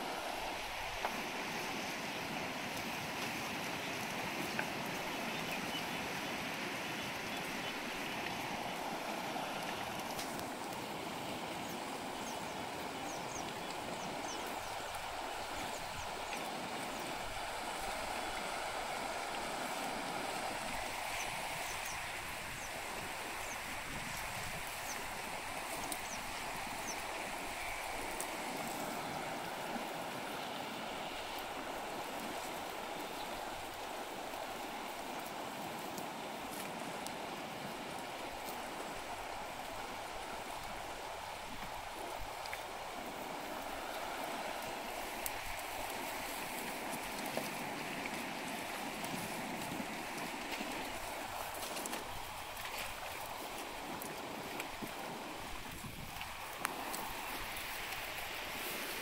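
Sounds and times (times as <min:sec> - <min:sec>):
river water running over stones: 0:00.0 - 0:59.0.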